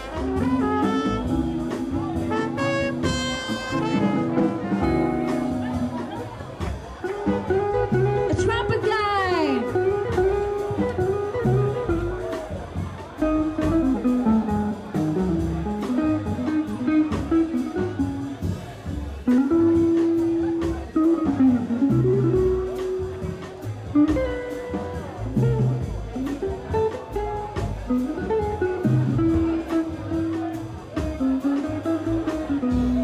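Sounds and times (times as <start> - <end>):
guitar bending sliding notes: 0.0 - 8.8
jazz band playing: 0.0 - 33.0.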